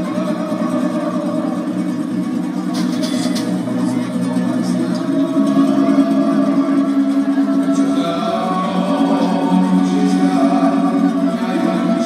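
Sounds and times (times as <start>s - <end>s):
double bass: 0.0s - 12.0s
plucked string melody: 0.0s - 12.0s.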